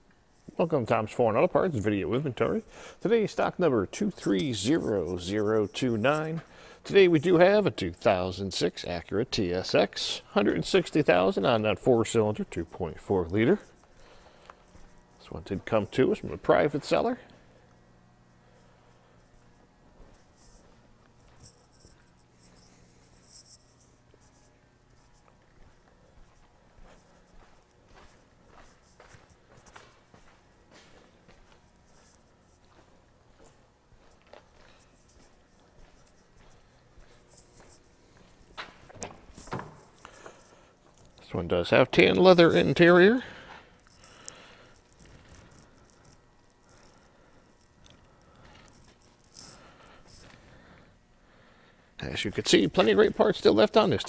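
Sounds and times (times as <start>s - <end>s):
low steady hum: 0.0s - 54.0s
footsteps scuffing on concrete: 25.1s - 41.0s.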